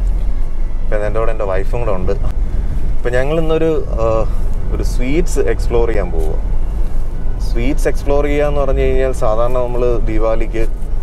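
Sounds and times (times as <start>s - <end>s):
car engine and tyres rumble: 0.0s - 11.0s
person talking: 3.0s - 6.4s.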